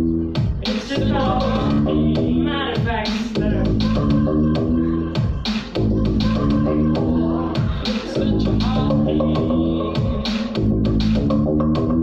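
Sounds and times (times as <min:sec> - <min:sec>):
low synth bass line: 0:00.0 - 0:02.8, 0:03.4 - 0:12.0
steady drum beat: 0:00.0 - 0:12.0.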